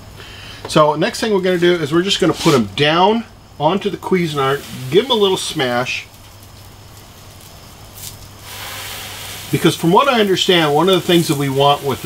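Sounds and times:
bun sizzling on griddle: 1.0s - 2.8s, 3.4s - 12.0s.

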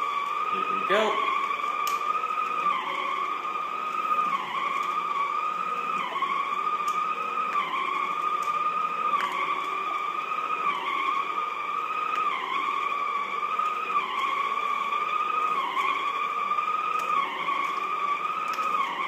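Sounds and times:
floor scrubber motor whine: 0.0s - 19.0s.

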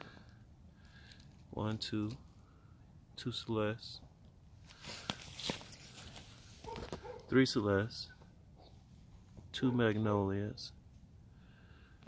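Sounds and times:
footsteps on grass and leaves: 4.6s - 7.2s.

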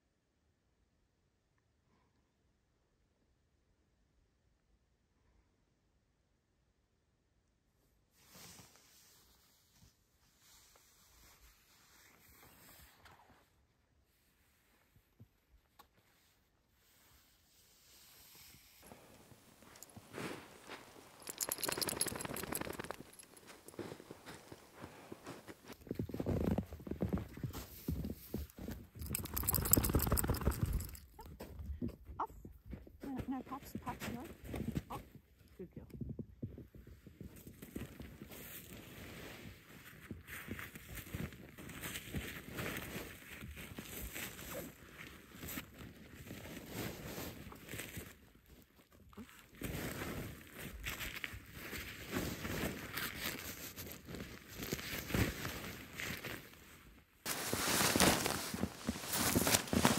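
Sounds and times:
crunching footsteps in snow: 18.8s - 31.0s, 49.6s - 59.9s.

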